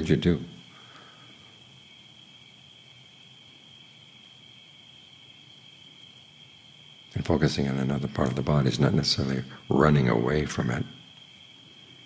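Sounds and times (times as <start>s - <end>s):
crickets trilling: 0.0s - 12.0s
low background hiss: 0.0s - 12.0s.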